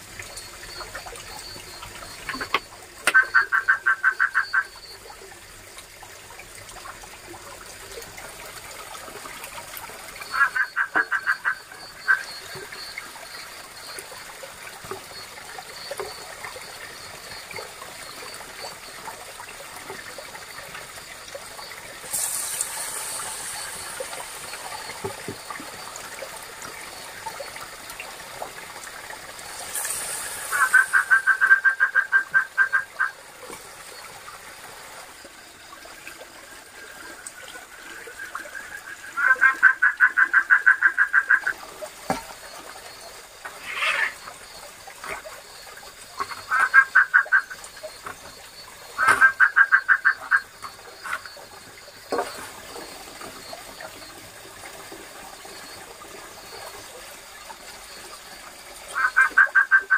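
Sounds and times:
frog croaking: 0.0s - 5.0s, 10.2s - 14.0s, 30.5s - 33.2s, 38.1s - 42.2s, 42.9s - 52.8s, 58.9s - 59.9s.

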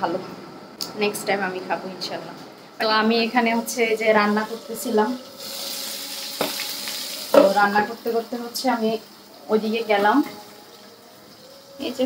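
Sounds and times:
fish sizzling in oil: 4.3s - 12.0s.

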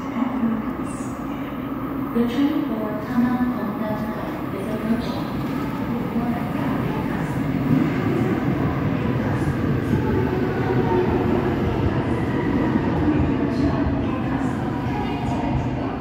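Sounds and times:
subway train pulling in: 0.0s - 16.0s.

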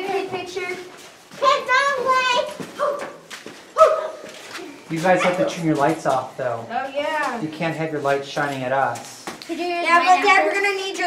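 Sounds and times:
adult speaking: 4.9s - 6.7s, 7.4s - 9.2s.

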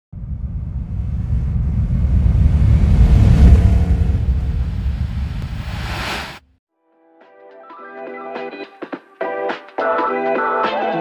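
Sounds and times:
deep car engine rumble: 0.1s - 6.0s
hissing whoosh: 0.3s - 6.4s.

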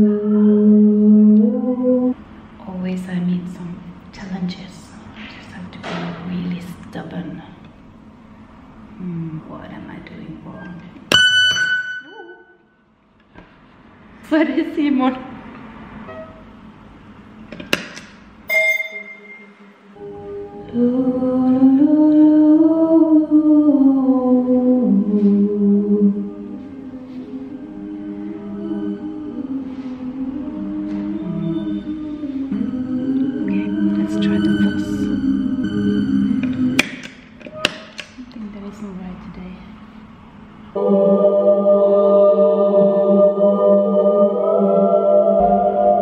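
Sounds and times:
ringing effects pedal note: 11.1s - 12.4s, 16.1s - 16.4s, 18.5s - 20.7s
faint wavering tones: 18.5s - 21.8s, 24.7s - 36.8s.

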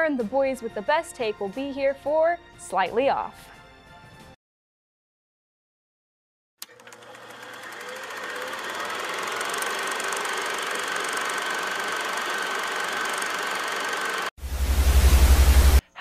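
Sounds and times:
machine running with clatter: 6.6s - 15.8s
pulsing low buzz: 14.4s - 15.8s
tv static hiss: 14.4s - 16.0s.

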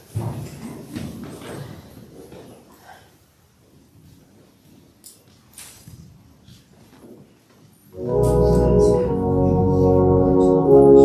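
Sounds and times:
people shuffling and rustling: 0.0s - 10.8s.

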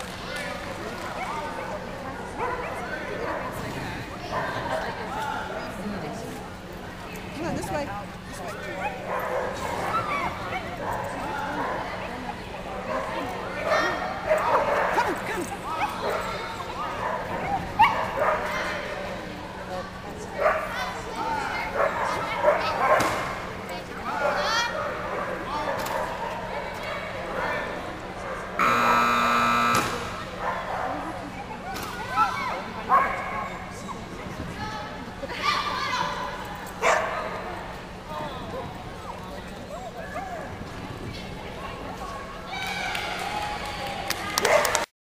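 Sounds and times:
dogs barking: 8.8s - 11.8s, 17.0s - 18.6s, 36.8s - 37.4s
electronic buzzer: 28.6s - 30.3s
voices calling out: 28.6s - 30.4s.

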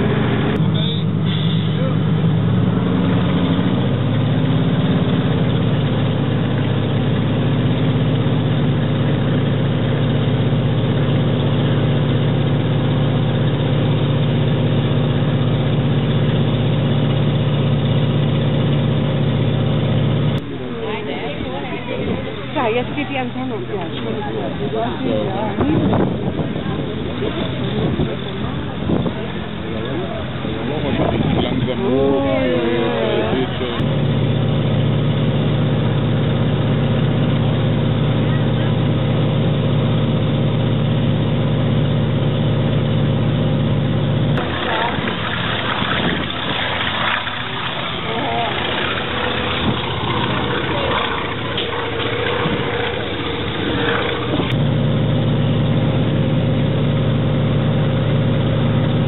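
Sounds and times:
radial aircraft engine running: 0.0s - 59.0s.

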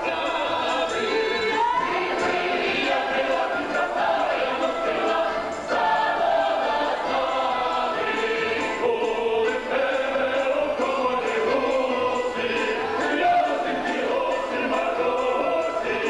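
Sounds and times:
mixed choir singing folk song: 0.0s - 16.0s.

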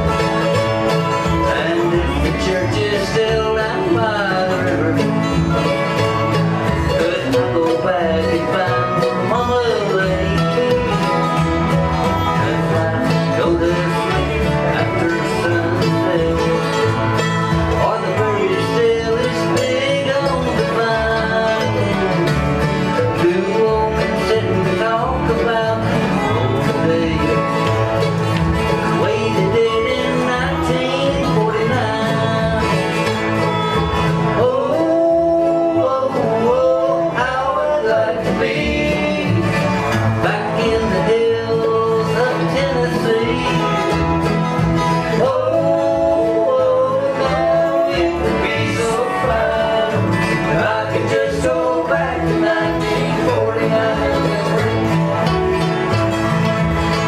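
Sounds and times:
bluegrass band playing: 0.0s - 57.0s
resonator guitar sliding notes: 0.0s - 57.0s.

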